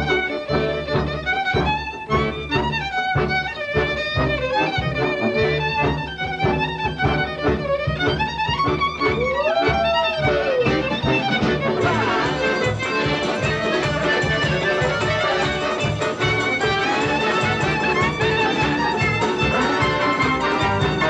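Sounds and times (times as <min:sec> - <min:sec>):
band accompaniment with steady beat: 0:00.0 - 0:21.0
violin melody with slides: 0:00.0 - 0:21.0.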